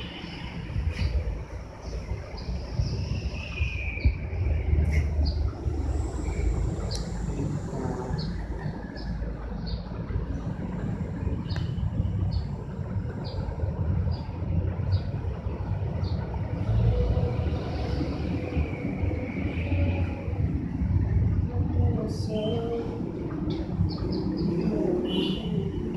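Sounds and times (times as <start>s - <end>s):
steady low rumble: 0.0s - 25.9s.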